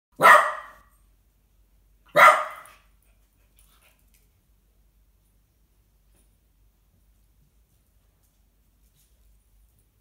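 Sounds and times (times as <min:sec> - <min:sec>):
dog barking: 0:00.1 - 0:00.9, 0:02.1 - 0:02.9.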